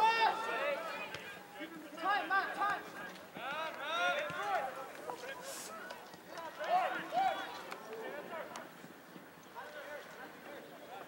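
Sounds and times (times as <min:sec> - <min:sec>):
people shouting: 0:00.0 - 0:01.1.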